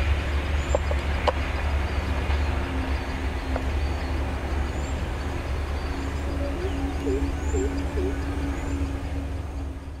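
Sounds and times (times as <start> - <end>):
train coaches rumbling on rails: 0.0 - 10.0.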